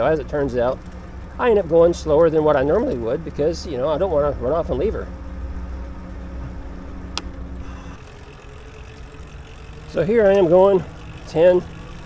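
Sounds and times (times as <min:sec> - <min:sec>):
electric motor whining: 0:07.4 - 0:12.0.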